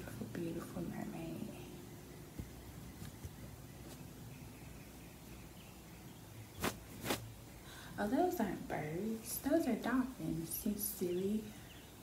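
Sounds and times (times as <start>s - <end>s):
wipe brushing across microphone: 6.6s - 7.3s.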